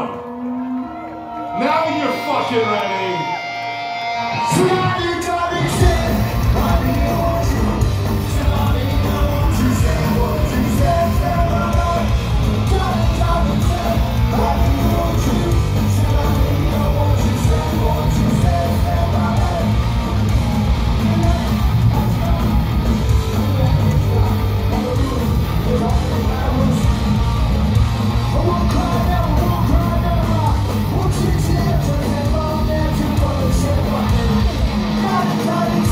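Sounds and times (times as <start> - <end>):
punk rock band playing: 0.0 - 35.9.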